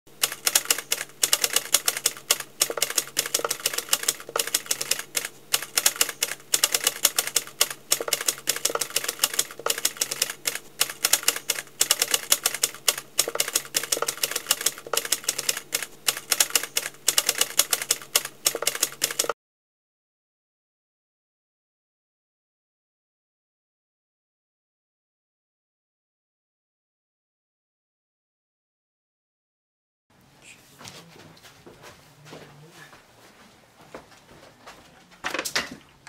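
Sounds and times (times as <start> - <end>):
typewriter keys clacking: 0.2 - 19.4.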